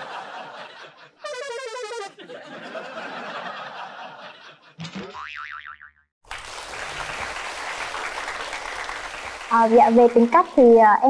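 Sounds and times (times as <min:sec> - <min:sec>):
comic boing sound effect: 0:04.8 - 0:06.1.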